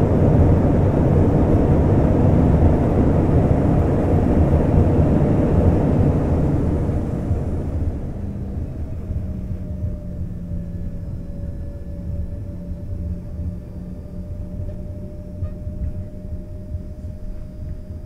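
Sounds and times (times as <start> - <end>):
jet engine roar: 0.0 - 18.0.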